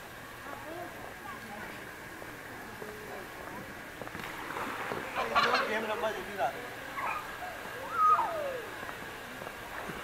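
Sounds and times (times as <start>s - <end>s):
rising and falling animal call: 7.8s - 8.7s.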